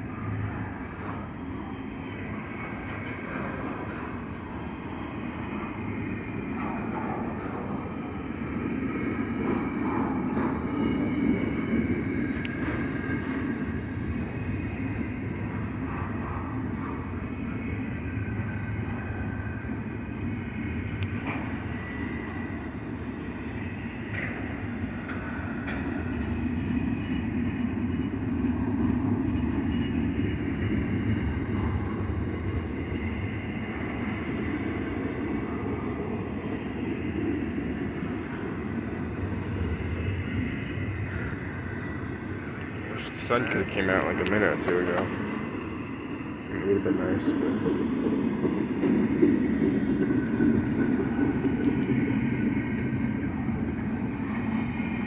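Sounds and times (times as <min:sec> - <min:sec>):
high wheel squeals: 0:00.0 - 0:06.5
train wheels rumbling on rail: 0:00.0 - 0:55.0.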